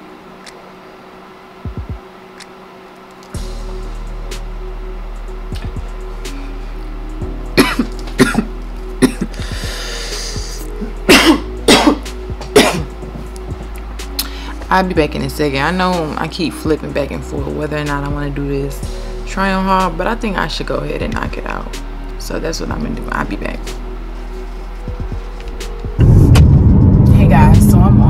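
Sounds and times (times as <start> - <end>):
background music with bass: 3.4 - 28.0
woman coughing: 7.6 - 9.3, 11.1 - 12.9.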